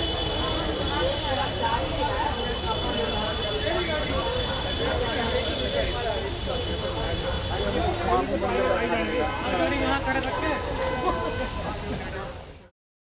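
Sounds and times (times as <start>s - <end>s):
indistinct voices talking: 0.0s - 12.7s.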